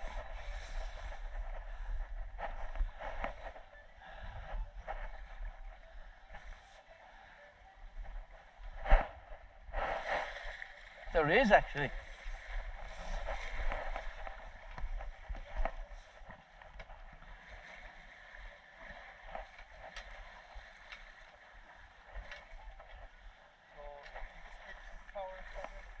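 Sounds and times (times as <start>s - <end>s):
water rushing along hull: 0.0s - 26.0s
wind on microphone: 0.0s - 26.0s.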